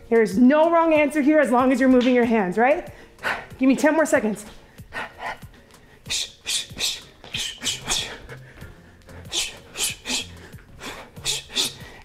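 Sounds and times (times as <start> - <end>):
sharp hissing exhales: 9.2 - 12.0.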